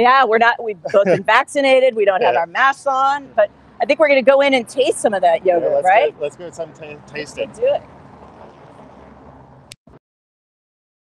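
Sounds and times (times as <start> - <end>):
city street traffic: 0.0 - 10.0
passers-by: 0.0 - 10.0.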